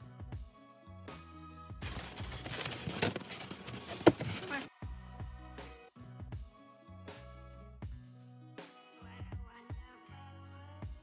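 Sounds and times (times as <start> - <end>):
background music with beat: 0.0 - 1.8, 4.8 - 11.0
craft knife cutting foam sheet: 1.8 - 4.7.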